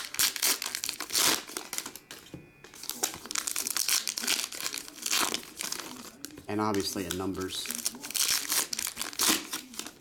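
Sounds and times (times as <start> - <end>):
plastic wrapper tearing and crinkling: 0.0 - 2.0, 2.7 - 10.0.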